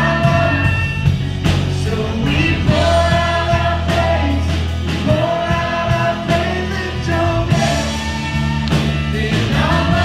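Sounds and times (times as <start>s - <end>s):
drum kit: 0.0s - 10.0s
guitar: 0.0s - 10.0s
keyboard: 0.0s - 10.0s
voices singing together: 0.0s - 10.0s.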